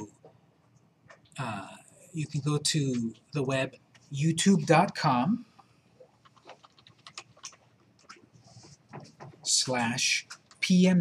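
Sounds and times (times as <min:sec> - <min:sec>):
keyboard typing: 0:06.0 - 0:10.8.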